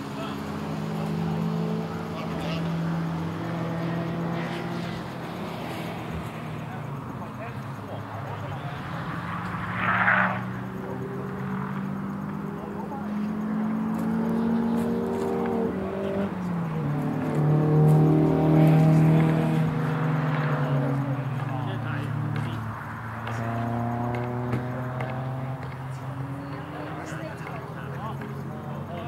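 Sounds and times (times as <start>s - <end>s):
race car engines droning: 0.0s - 29.0s.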